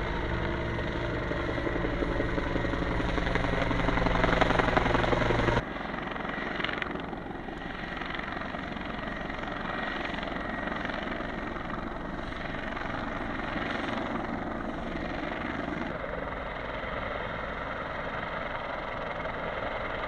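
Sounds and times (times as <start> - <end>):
helicopter rotor and turbine: 0.0 - 20.0.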